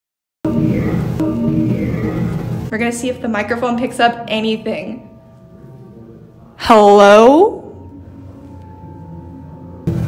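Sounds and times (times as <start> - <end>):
eerie background music drone: 0.5 - 2.7, 7.5 - 10.0.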